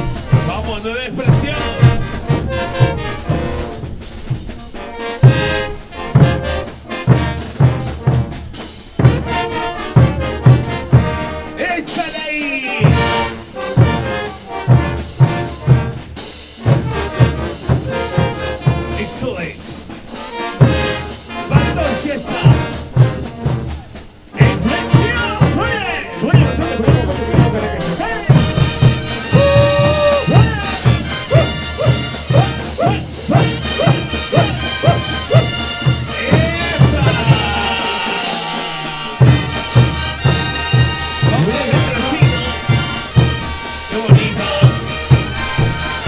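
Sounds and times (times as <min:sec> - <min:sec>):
bass drums: 0:00.0 - 0:11.5, 0:12.8 - 0:19.1, 0:19.8 - 0:46.0
brass band playing: 0:00.0 - 0:46.0.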